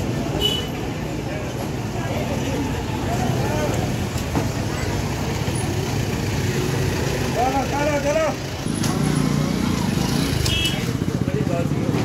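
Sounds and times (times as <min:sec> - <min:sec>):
street noise: 0:00.0 - 0:12.0
vehicle engines running: 0:00.0 - 0:12.0.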